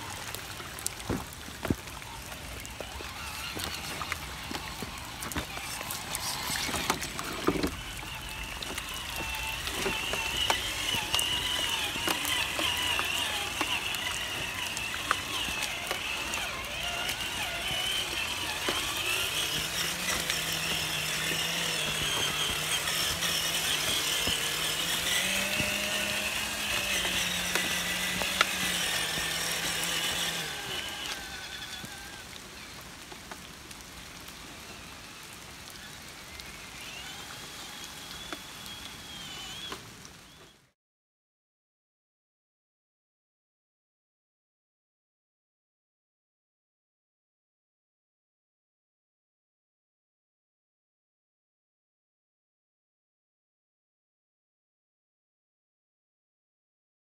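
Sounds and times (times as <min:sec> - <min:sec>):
driving through muddy water: 0:00.0 - 0:33.5, 0:34.5 - 0:40.0
electric motor and gear whine: 0:00.0 - 0:40.7.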